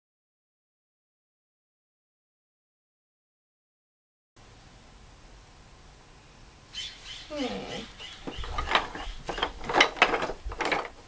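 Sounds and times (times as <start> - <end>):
faint background hiss: 4.4 - 11.0.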